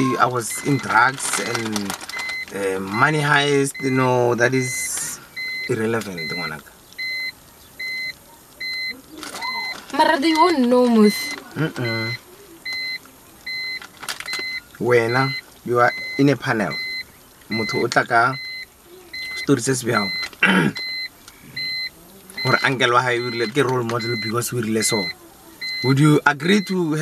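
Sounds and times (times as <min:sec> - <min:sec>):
car warning chime beeps: 0:00.0 - 0:27.0.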